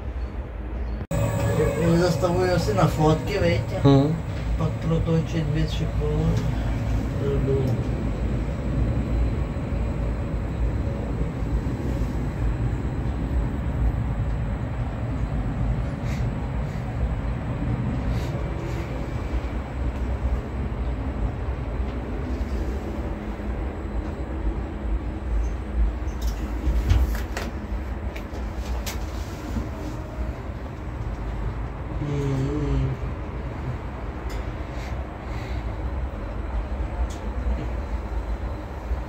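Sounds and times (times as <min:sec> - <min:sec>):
low rumble in gondola: 0:00.0 - 0:39.0.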